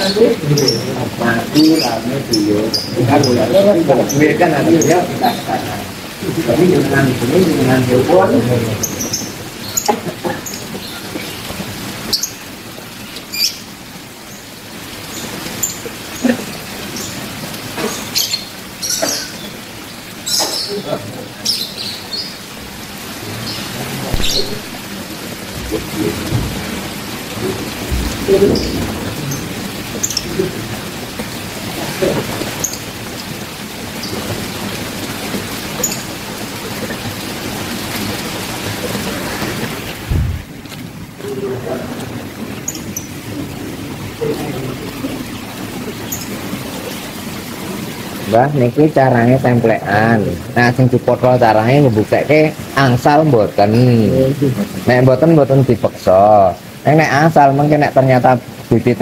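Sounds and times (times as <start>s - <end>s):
steady rain falling: 0.0s - 59.0s.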